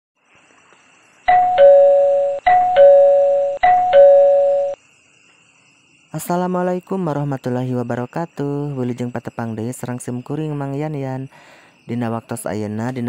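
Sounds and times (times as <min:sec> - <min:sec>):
two-tone doorbell chime: 0:01.3 - 0:04.8.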